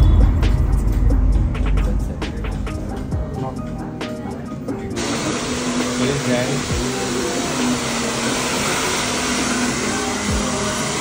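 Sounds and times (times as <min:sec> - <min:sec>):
background music with a beat: 0:00.0 - 0:11.0
hair dryer blowing: 0:04.9 - 0:11.0.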